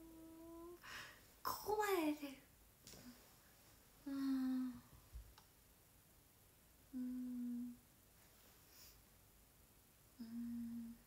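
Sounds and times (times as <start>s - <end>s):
woman humming: 0.0s - 0.8s, 4.0s - 4.9s, 6.9s - 7.8s, 10.2s - 11.0s.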